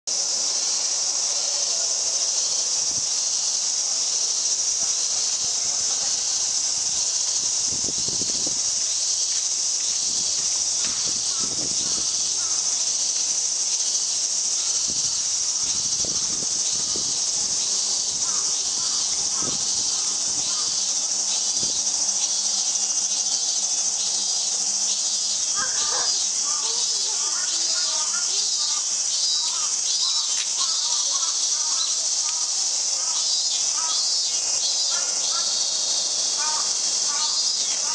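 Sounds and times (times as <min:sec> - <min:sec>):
high-pitched hiss: 0:00.1 - 0:37.9
insects chirring: 0:00.1 - 0:37.9.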